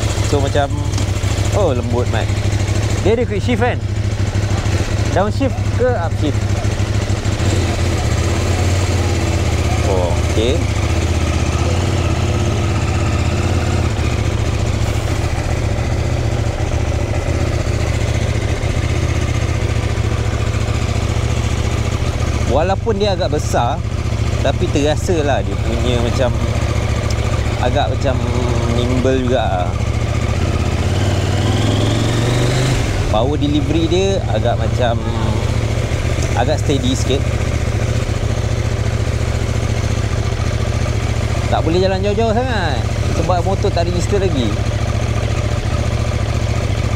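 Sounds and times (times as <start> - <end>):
motorcycle engine at low revs: 0.0 - 46.9.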